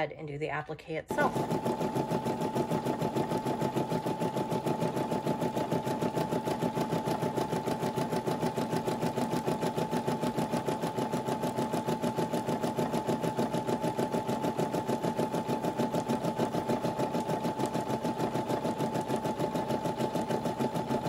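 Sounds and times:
embroidery machine stitching: 1.1 - 21.0.

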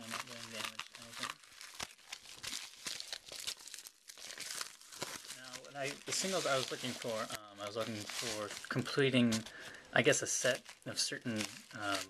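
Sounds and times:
padded envelope tearing and crinkling: 0.0 - 12.0.

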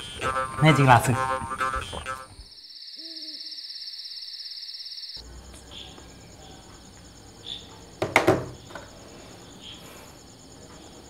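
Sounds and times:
pulsing insect trill: 0.0 - 11.0
owl hoot: 3.0 - 3.7.

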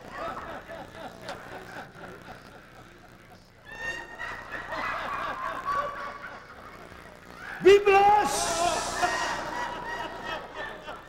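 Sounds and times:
indistinct voices: 7.6 - 10.1.

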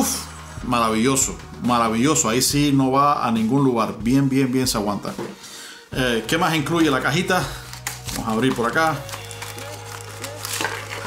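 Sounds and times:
soft background music: 0.0 - 11.0
cardboard rustling: 6.7 - 11.0.

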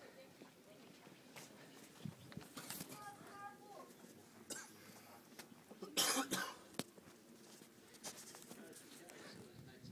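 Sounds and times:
person coughing: 4.5 - 4.8, 5.8 - 6.6.

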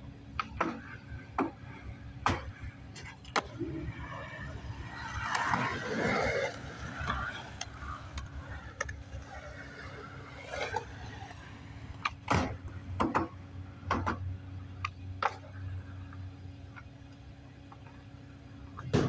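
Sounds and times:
skateboard wheels rolling on concrete: 0.0 - 19.0
skateboard clacks: 0.4 - 15.5.

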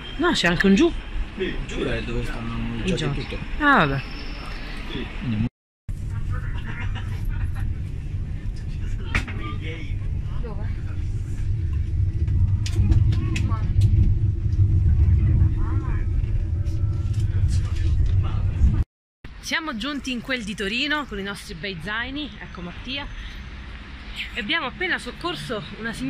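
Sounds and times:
train carriage rumble: 0.1 - 18.8.

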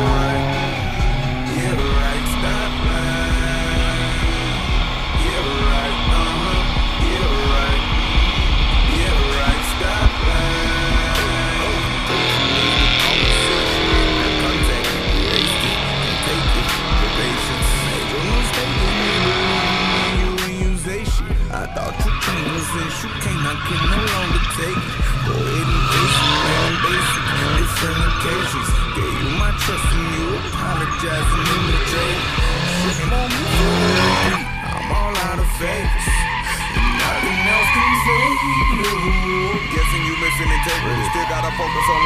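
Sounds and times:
engines revving: 0.0 - 42.0
hip-hop music with bass beat: 0.0 - 42.0
tyres skidding: 0.0 - 42.0.

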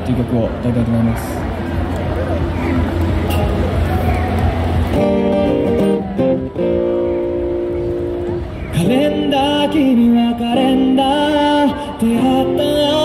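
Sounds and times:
low traffic hum: 0.0 - 13.0
acoustic guitar chords: 4.8 - 13.0
man singing: 8.8 - 13.0.

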